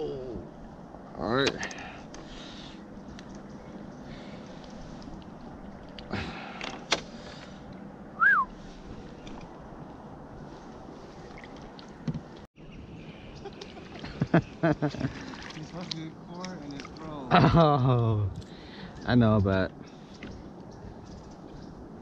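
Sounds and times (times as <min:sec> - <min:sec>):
faint outdoor background on water: 0:00.0 - 0:22.0
short whistled note: 0:08.2 - 0:08.5.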